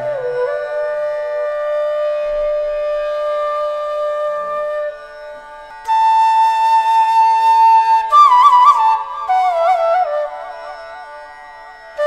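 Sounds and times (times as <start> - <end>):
flute held notes: 0.0 - 11.3.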